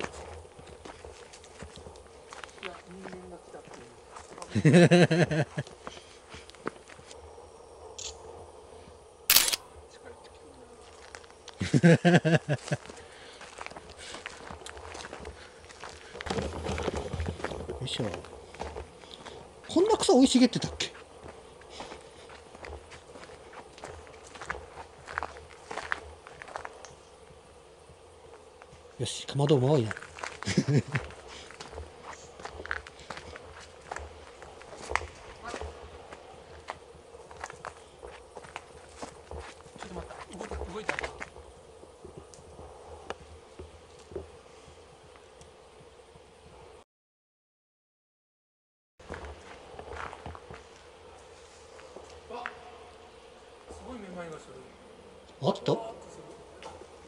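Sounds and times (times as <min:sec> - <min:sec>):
footsteps on dirt path: 0:00.0 - 0:04.6, 0:05.6 - 0:07.2, 0:12.6 - 0:19.9, 0:20.6 - 0:26.8, 0:29.9 - 0:44.4, 0:49.0 - 0:52.6
faint steady hum: 0:00.0 - 0:46.8
people laughing: 0:04.5 - 0:05.7, 0:11.6 - 0:12.9, 0:30.4 - 0:31.2
faint scattered ticks: 0:09.7 - 0:16.3, 0:17.0 - 0:46.2.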